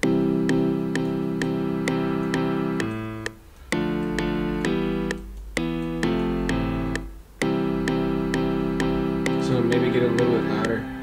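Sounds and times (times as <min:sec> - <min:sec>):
looping piano chords: 0:00.0 - 0:11.0.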